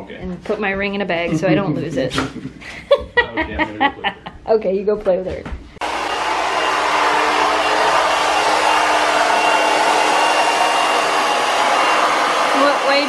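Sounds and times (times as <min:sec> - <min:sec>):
hair dryer running: 0:05.8 - 0:13.0.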